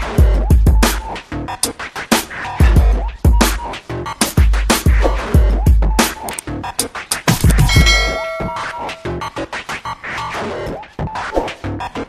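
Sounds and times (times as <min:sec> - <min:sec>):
bright bell-like ding: 0:07.7 - 0:09.2.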